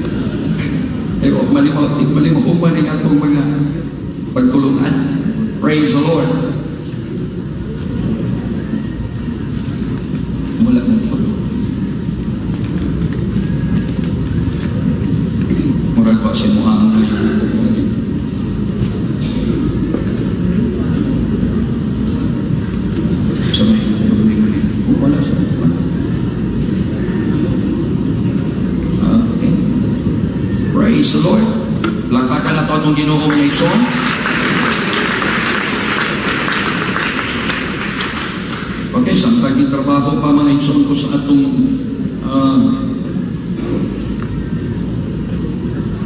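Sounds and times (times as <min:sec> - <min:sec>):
faint indistinct voices: 0:00.0 - 0:33.0
faint audience chatter: 0:00.0 - 0:46.0
low hall rumble: 0:00.0 - 0:46.0.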